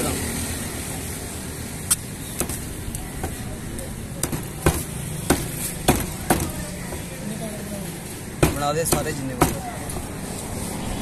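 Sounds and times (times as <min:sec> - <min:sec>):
cleaver chopping on wooden block: 0:04.2 - 0:07.1, 0:08.4 - 0:09.7.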